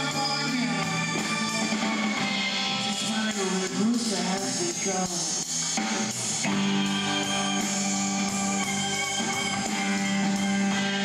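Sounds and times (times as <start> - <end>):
electric guitar sustained notes: 0.0 - 11.0
live band music: 0.0 - 11.0.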